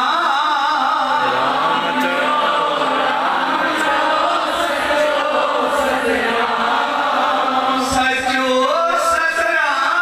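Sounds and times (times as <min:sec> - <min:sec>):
congregation chanting: 0:00.0 - 0:10.0.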